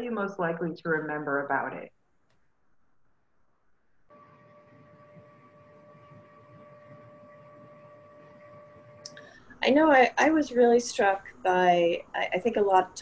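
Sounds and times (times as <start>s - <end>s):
faint hum with pitched whine: 2.5s - 13.0s.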